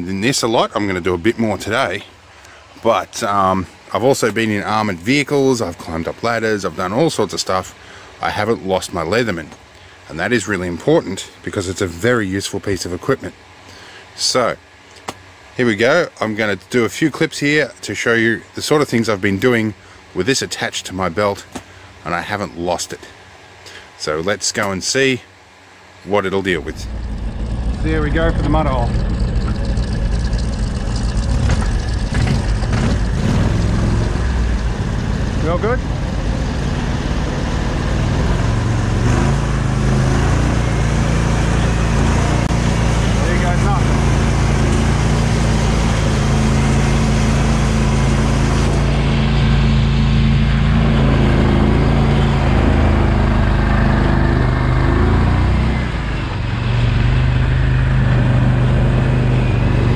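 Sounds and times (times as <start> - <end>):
vehicle engine running under load: 0.0 - 59.9
knocks from rough ground: 29.2 - 33.4.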